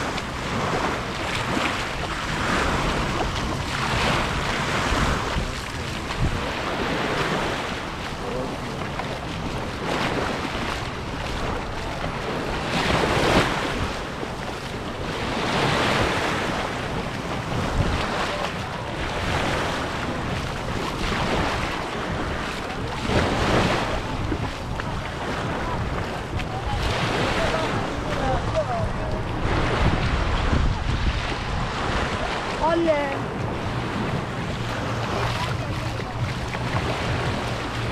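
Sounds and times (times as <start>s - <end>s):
small waves breaking on sand: 0.0s - 37.9s
wind rumble on microphone: 0.0s - 37.9s.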